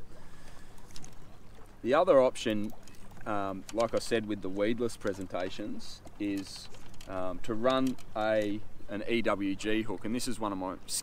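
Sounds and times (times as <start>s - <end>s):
water lapping against boat hull: 0.0s - 11.0s
man speaking: 1.8s - 11.0s.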